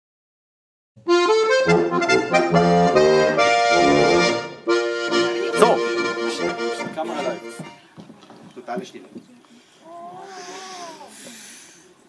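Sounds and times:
accordion playing folk tune: 0:01.0 - 0:08.0.

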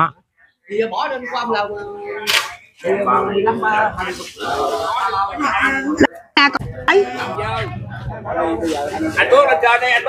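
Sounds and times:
people talking: 0:00.7 - 0:10.0.

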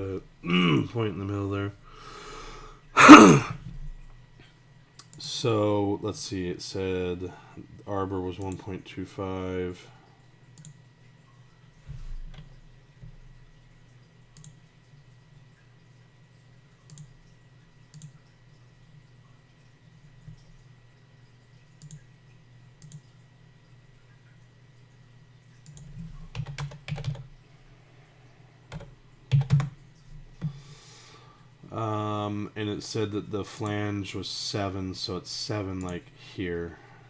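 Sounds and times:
steady low hum: 0:00.0 - 0:37.0
keyboard keystrokes: 0:25.6 - 0:27.3, 0:28.7 - 0:29.8.

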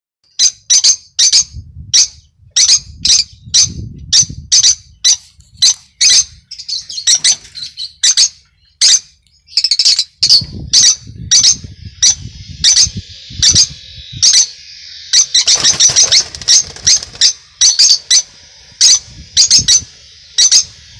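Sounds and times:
lovebirds chirping shrilly: 0:00.3 - 0:20.9.

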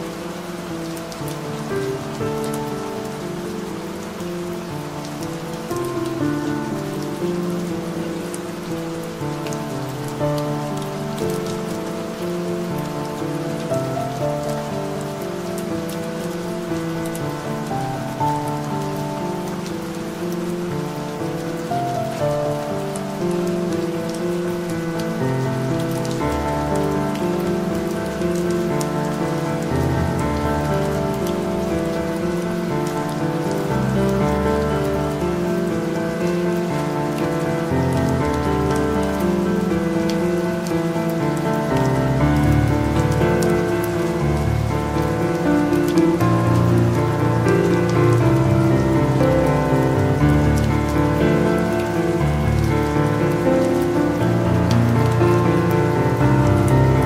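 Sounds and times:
calm piano music: 0:00.0 - 0:57.0
steady rain: 0:00.0 - 0:57.0.

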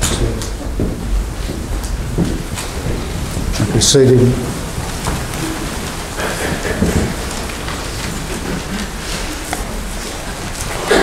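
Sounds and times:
faint murmur: 0:00.0 - 0:11.0
steady hiss: 0:00.0 - 0:11.0.

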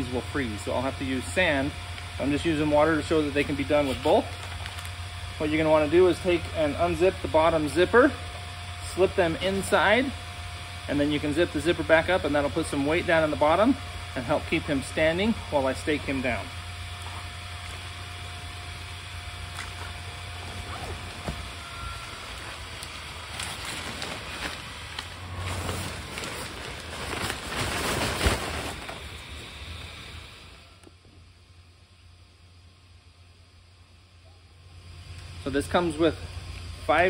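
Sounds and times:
blower fan humming: 0:00.0 - 0:37.0
fabric rustling: 0:22.5 - 0:29.1.

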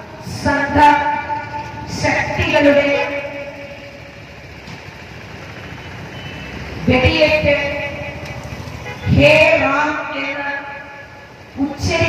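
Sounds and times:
outdoor background noise: 0:00.0 - 0:12.0
woman speaking through microphone: 0:00.2 - 0:03.5, 0:06.9 - 0:08.1, 0:09.1 - 0:10.8, 0:11.6 - 0:12.0.

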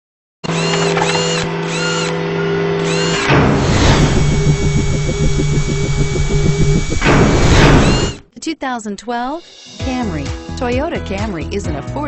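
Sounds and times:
electronic whirring tones: 0:00.5 - 0:08.3
fast mechanical pulse: 0:02.8 - 0:08.2
arcing chirp: 0:02.9 - 0:08.2
whoosh: 0:03.3 - 0:08.2.

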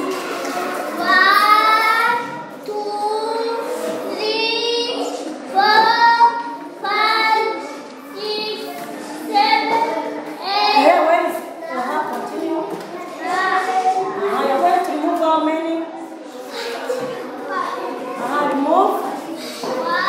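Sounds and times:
children singing: 0:00.0 - 0:10.8, 0:19.3 - 0:20.0.

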